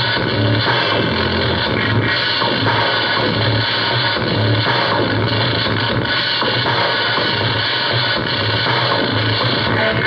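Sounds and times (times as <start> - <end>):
experimental electronic music: 0.0 - 10.0.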